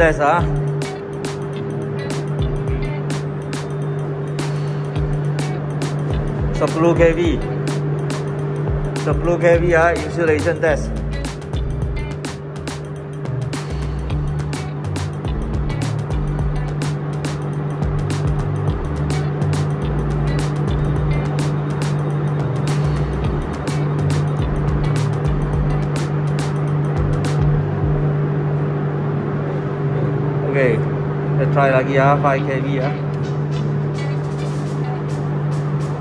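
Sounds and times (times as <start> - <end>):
low electrical hum: 0.0 - 36.0.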